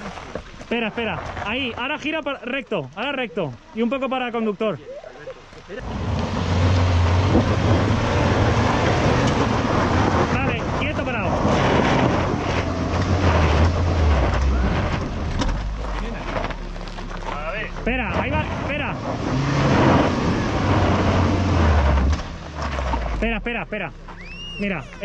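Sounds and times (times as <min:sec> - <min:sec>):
car engine revving under load: 0:05.4 - 0:25.0.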